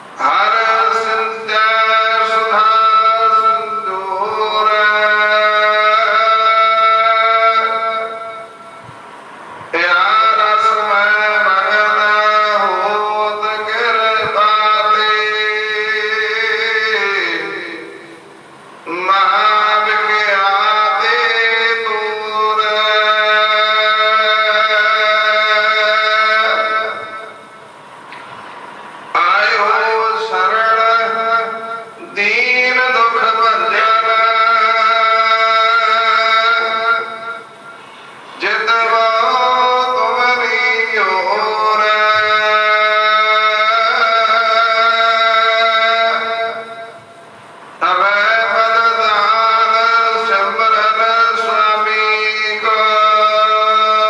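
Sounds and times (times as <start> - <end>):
man chanting a hymn: 0.0 - 9.0, 9.6 - 27.7, 29.1 - 54.0.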